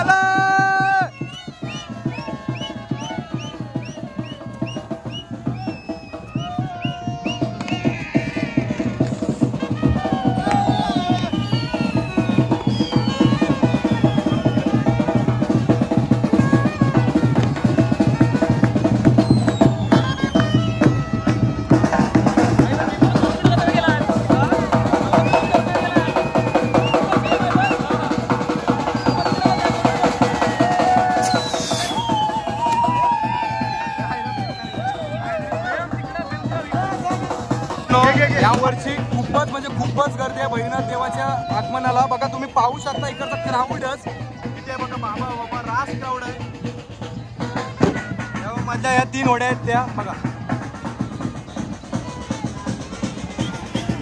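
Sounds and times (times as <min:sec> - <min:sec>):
fast continuous drumming: 0:00.0 - 0:54.0
trumpets playing: 0:20.6 - 0:22.8
high whistles sliding downward: 0:28.8 - 0:35.2.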